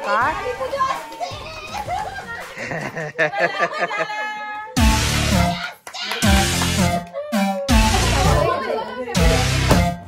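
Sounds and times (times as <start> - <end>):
children shouting and cheering: 0.1 - 2.8, 3.4 - 9.4
music: 4.7 - 10.0
hand clapping: 5.6 - 7.2.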